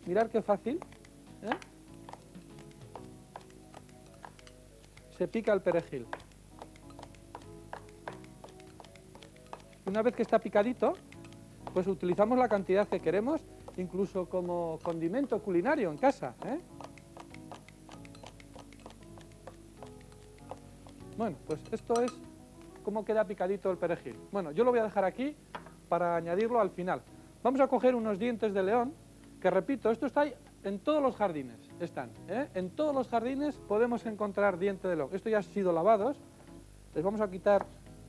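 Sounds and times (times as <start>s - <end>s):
scissors snipping herbs: 0.0s - 23.0s
quiet background music: 0.0s - 38.0s.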